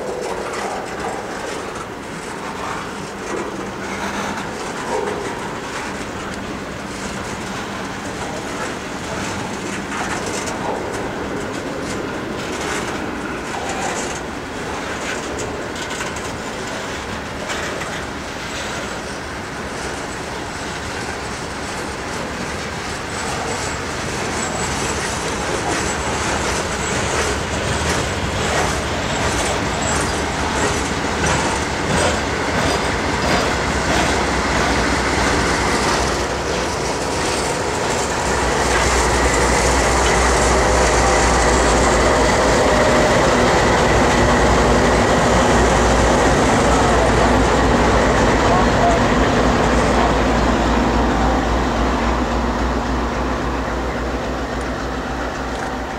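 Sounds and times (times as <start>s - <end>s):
wheels clicking over rail joints: 0.0s - 51.0s, 53.0s - 55.9s
diesel locomotive drone: 0.0s - 55.9s.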